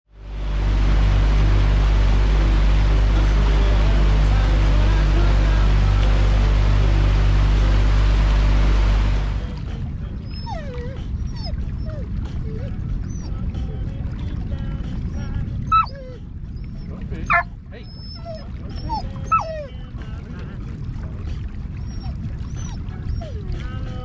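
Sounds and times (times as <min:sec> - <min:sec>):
outboard motor droning: 0:00.1 - 0:24.0
water and wind rushing: 0:00.1 - 0:24.0
dog whining: 0:10.2 - 0:13.4, 0:15.7 - 0:19.8, 0:21.8 - 0:23.8.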